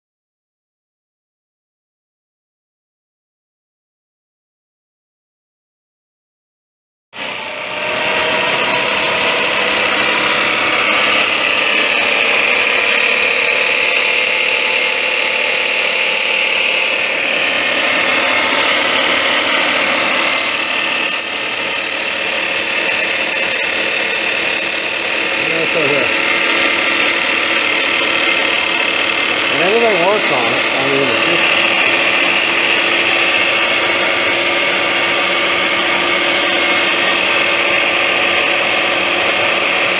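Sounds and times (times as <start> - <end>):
electric motor whine: 7.2 - 34.0.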